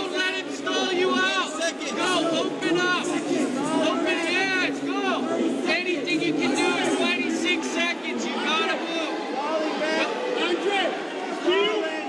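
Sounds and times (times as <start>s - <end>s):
crowd chatter: 0.0s - 12.0s
people calling out: 0.0s - 12.0s.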